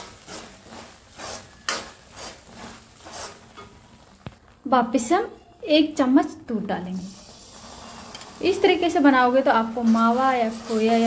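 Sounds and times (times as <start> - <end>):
metal spatula scraping a pan: 0.0 - 3.8, 7.0 - 11.0.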